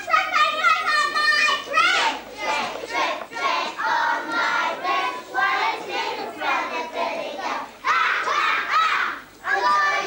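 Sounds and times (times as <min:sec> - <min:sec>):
children chanting in unison: 0:01.0 - 0:10.0.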